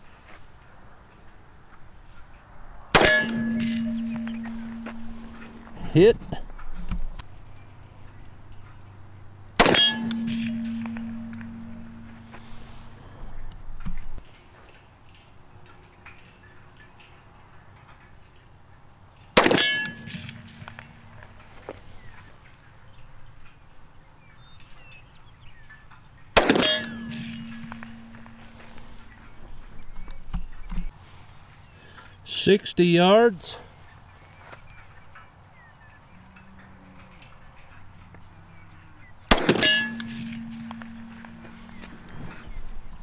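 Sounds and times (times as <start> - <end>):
pistol shots: 2.9 - 5.5, 9.6 - 12.4, 19.4 - 20.9, 26.4 - 28.4, 39.3 - 41.5
steel target clanging: 2.9 - 6.1, 9.6 - 13.0, 19.4 - 21.5, 26.4 - 29.4, 39.3 - 42.5.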